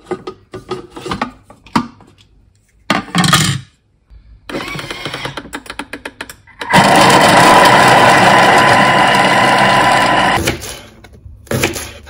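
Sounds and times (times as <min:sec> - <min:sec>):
food processor motor whining: 0:06.5 - 0:10.4.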